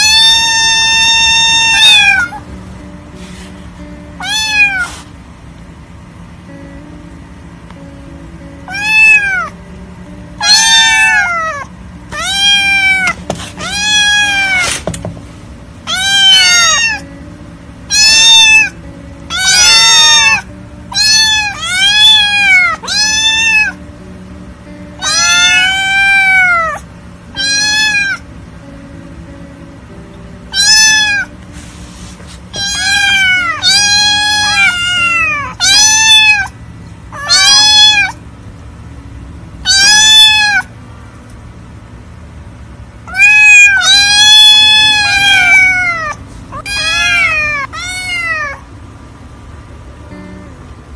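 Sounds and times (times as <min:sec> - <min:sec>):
kittens meowing: 0:00.0 - 0:02.5, 0:04.2 - 0:05.1, 0:08.6 - 0:09.6, 0:10.4 - 0:14.8, 0:15.8 - 0:17.1, 0:17.9 - 0:23.8, 0:25.0 - 0:28.2, 0:30.5 - 0:31.4, 0:32.5 - 0:38.2, 0:39.6 - 0:40.8, 0:43.0 - 0:48.7.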